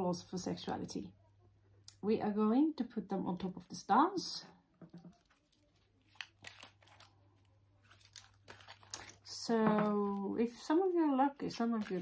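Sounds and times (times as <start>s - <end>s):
cards rustling and snapping: 4.9s - 9.2s, 11.5s - 12.0s.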